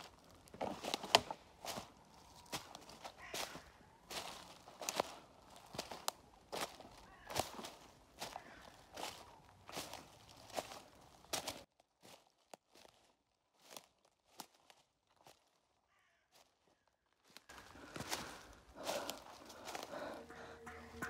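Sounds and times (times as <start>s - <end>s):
footsteps walking slowly: 0.0s - 15.6s, 17.2s - 21.0s.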